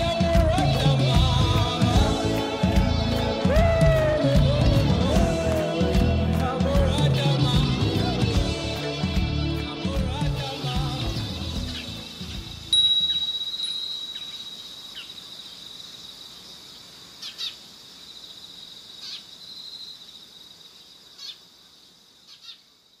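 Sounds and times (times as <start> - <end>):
music: 0.0 - 13.2
short chirp-like calls: 11.3 - 16.4, 17.2 - 21.5, 22.2 - 23.0
high steady ringing tone: 12.7 - 15.8.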